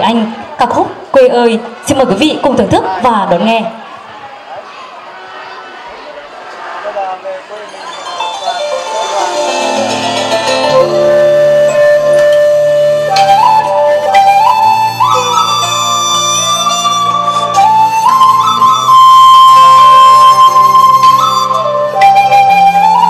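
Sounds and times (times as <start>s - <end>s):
flute slow melody: 7.7s - 23.0s.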